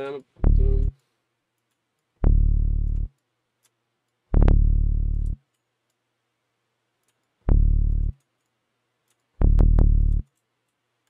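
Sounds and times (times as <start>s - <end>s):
deep synthesized tone with glitches: 0.4s - 0.9s, 2.2s - 3.1s, 4.4s - 5.4s, 7.5s - 8.1s.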